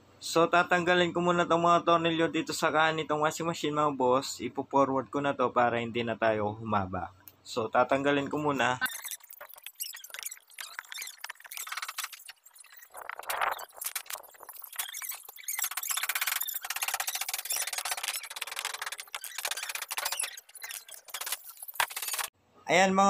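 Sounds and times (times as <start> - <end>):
sped-up screwdriver clicks and tones: 8.8 - 22.3.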